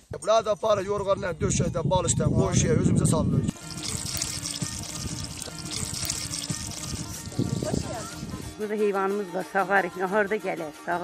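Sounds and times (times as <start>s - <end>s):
water pouring onto stones: 3.6s - 7.6s.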